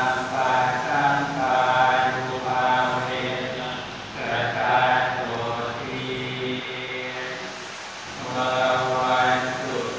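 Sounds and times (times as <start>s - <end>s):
monks chanting in unison: 0.0s - 9.9s.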